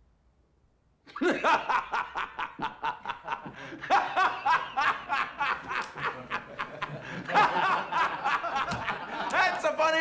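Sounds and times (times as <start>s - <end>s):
man laughing hard: 1.1s - 9.6s.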